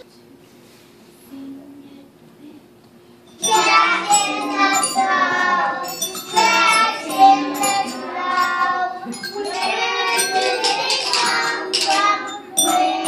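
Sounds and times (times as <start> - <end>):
light jingling: 3.3 - 12.8
children singing: 3.4 - 13.0
rhythm sticks tapping: 3.4 - 13.0.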